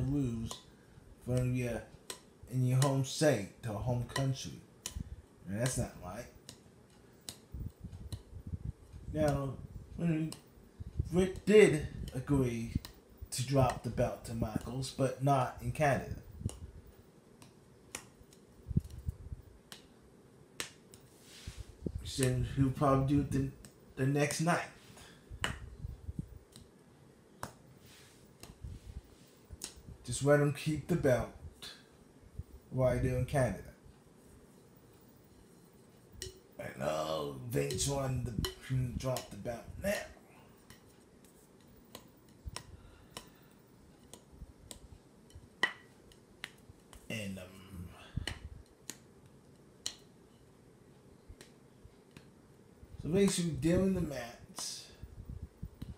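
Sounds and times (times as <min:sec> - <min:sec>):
faint clicks and taps: 0:04.1 - 0:15.0, 0:16.0 - 0:20.0, 0:23.1 - 0:23.8, 0:25.0 - 0:26.8, 0:27.4 - 0:28.6, 0:29.3 - 0:29.9, 0:40.5 - 0:47.1, 0:48.2 - 0:52.4, 0:55.6 - 0:55.9.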